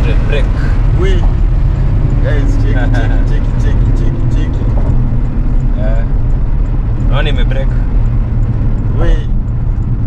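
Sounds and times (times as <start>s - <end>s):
car cabin highway rumble: 0.0s - 10.0s.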